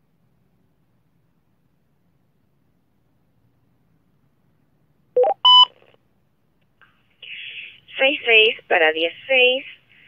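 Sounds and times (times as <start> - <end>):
two-way radio beeps: 5.2 - 5.7.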